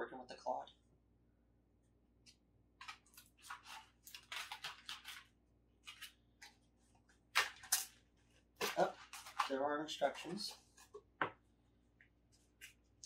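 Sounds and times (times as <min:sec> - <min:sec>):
plastic packaging crinkling: 0:02.8 - 0:10.9.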